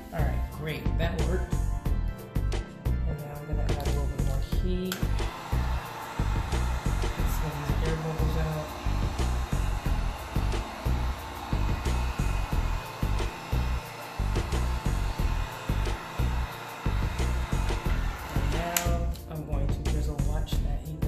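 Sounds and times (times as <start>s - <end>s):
music with bass beat: 0.0s - 21.0s
heat gun blowing: 4.9s - 19.2s.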